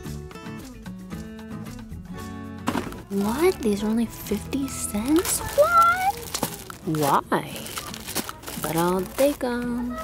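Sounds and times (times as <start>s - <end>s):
instrumental background music: 0.0s - 10.0s.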